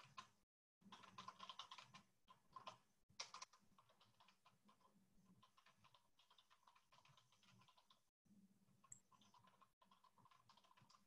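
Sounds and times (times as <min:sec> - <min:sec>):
computer keyboard typing: 0:00.0 - 0:08.0, 0:08.9 - 0:11.0.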